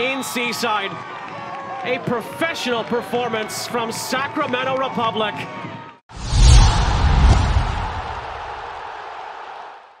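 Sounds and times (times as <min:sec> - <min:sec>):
steady rushing noise: 0:06.1 - 0:08.8.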